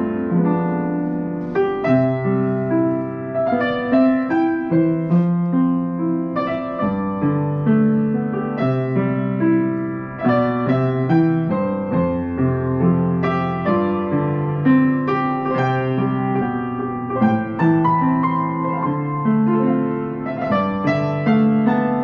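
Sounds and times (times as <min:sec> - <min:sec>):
upright piano melody: 0:00.0 - 0:22.0.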